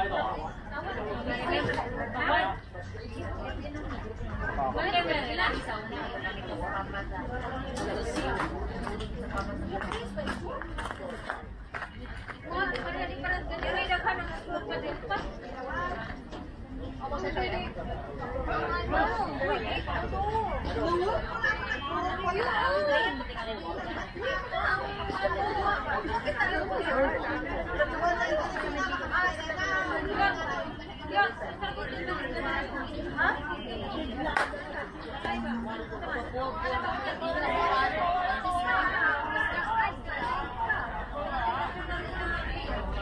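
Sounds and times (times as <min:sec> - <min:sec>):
people chattering: 0:00.0 - 0:43.0.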